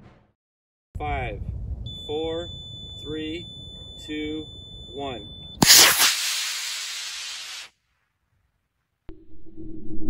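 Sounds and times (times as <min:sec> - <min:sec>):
rocket motor hissing: 0:05.6 - 0:07.7.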